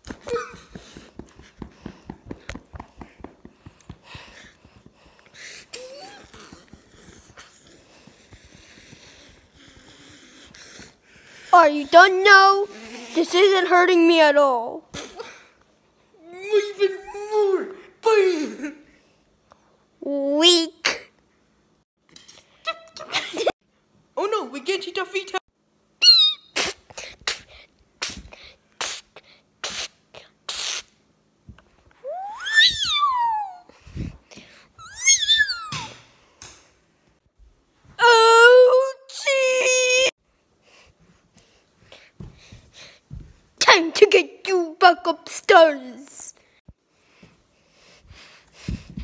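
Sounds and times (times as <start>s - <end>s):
person squealing: 32.0s - 33.7s, 34.8s - 36.0s.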